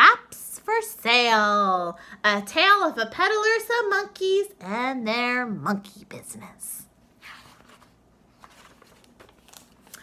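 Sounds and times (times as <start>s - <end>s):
paper rustling: 7.2s - 10.0s.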